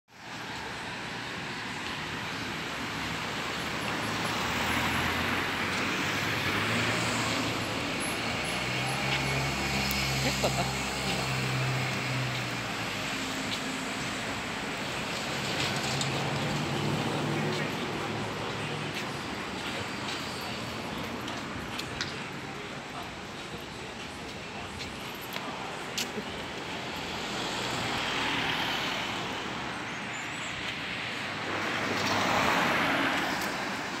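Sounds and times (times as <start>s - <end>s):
cars passing by: 0.1s - 34.0s
outdoor background noise: 0.1s - 34.0s.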